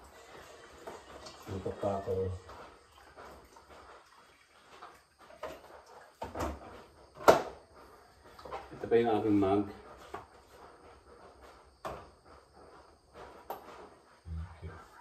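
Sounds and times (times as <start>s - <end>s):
soft knocks of items moved: 4.7s - 14.2s.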